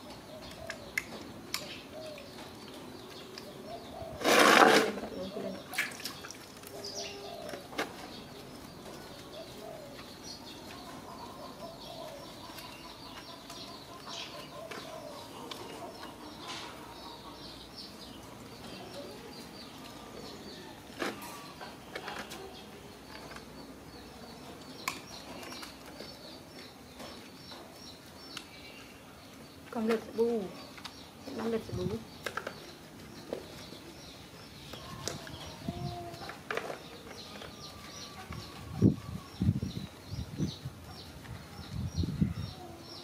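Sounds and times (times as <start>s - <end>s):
faint birds chirping: 0.0s - 43.0s.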